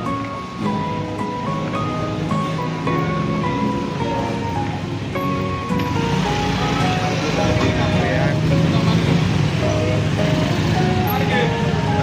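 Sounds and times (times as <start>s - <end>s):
motorbikes running: 0.0s - 12.0s
music playing: 0.0s - 12.0s
people chattering: 0.0s - 12.0s.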